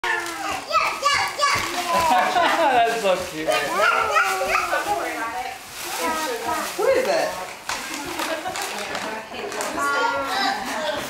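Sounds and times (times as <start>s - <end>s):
toddler babbling: 3.6s - 4.9s.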